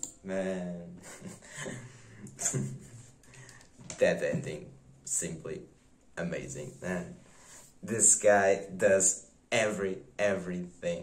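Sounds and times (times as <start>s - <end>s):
short breathy laugh: 1.0s - 3.6s.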